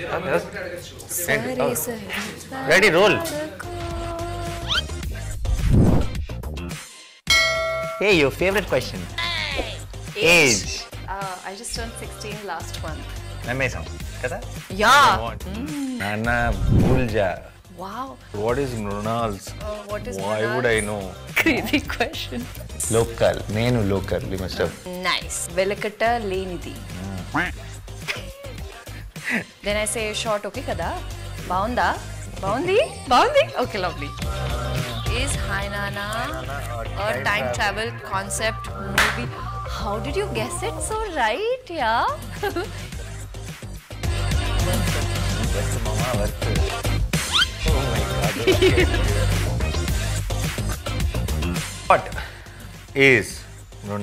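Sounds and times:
background music: 0.0s - 54.0s
man laughing: 27.4s - 29.6s, 42.3s - 42.9s, 48.2s - 49.6s.

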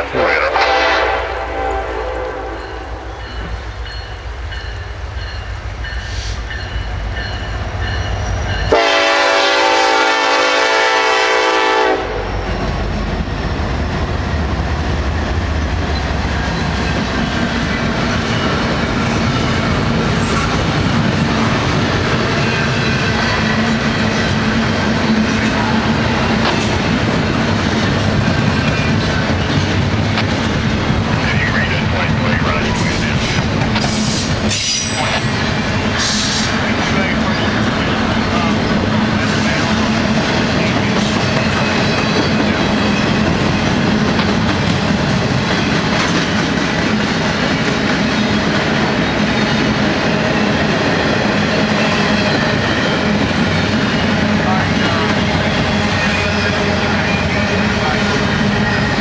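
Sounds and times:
locomotive air horn blast: 0.0s - 3.0s, 8.7s - 12.4s
freight train rumble: 0.0s - 59.0s
train wheels clickety-clack: 12.5s - 59.0s.

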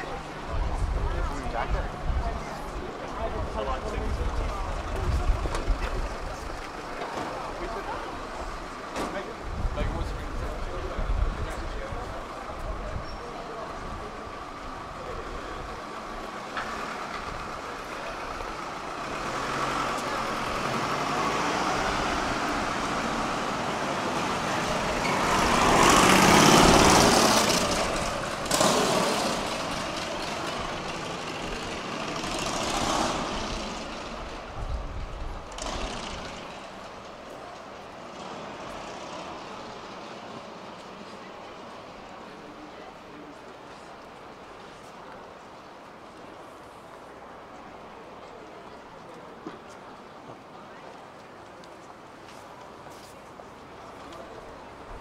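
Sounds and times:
street traffic: 0.0s - 55.0s
vehicle passing close: 16.4s - 37.0s.

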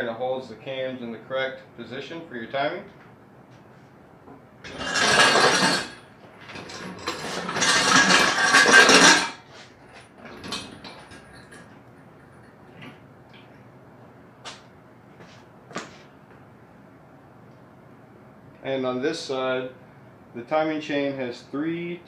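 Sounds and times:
metallic scraping and rattling: 4.6s - 13.0s.

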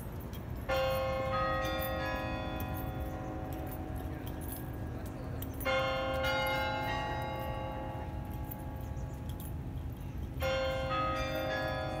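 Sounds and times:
carillon bells ringing: 0.0s - 12.0s.

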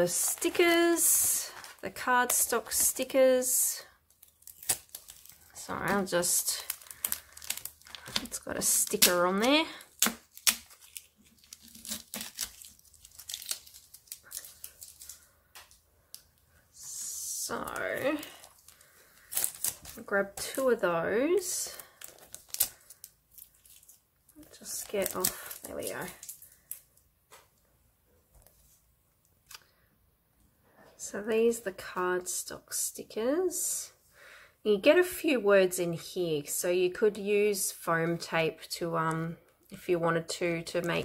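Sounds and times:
plastic sleeve crinkling: 0.0s - 16.4s, 17.0s - 20.8s, 21.4s - 27.0s.

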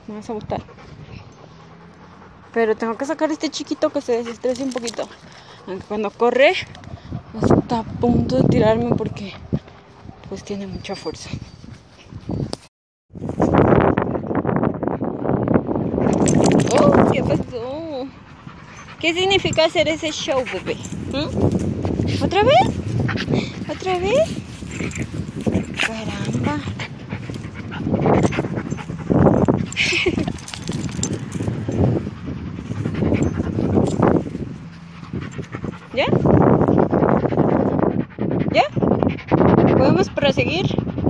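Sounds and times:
wind buffeting microphone: 0.0s - 41.0s
dog panting: 0.2s - 12.5s, 16.0s - 41.0s.

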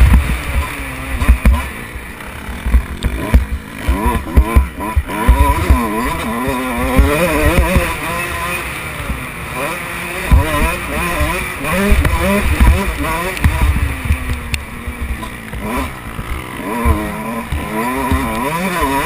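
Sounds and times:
motorbike engine revving: 0.0s - 19.0s.

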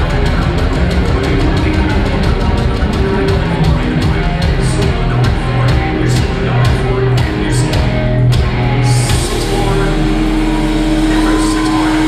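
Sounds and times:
distorted electric guitar and bass drone: 0.0s - 12.0s.

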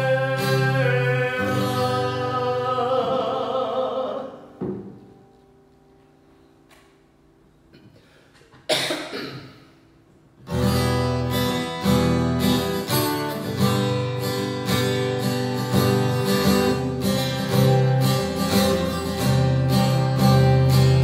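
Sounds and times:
acoustic guitar strumming chords: 0.0s - 6.2s, 10.5s - 21.0s.

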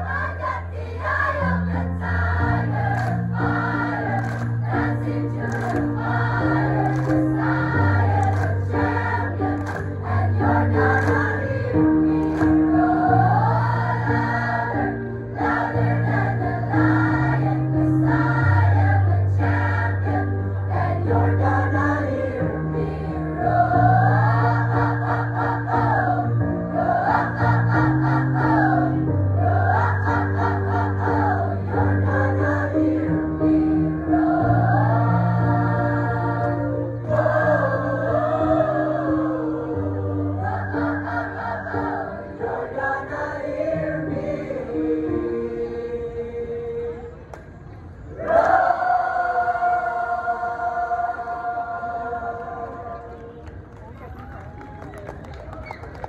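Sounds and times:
mixed choir singing in harmony: 0.0s - 47.4s, 48.1s - 53.3s.

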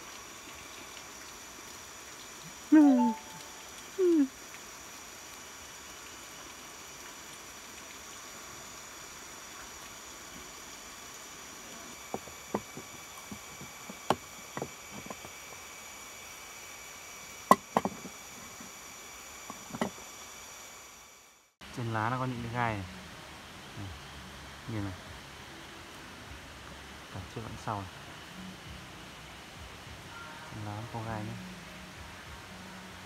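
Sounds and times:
background hiss: 0.0s - 33.0s
faint high tones: 2.7s - 4.3s.

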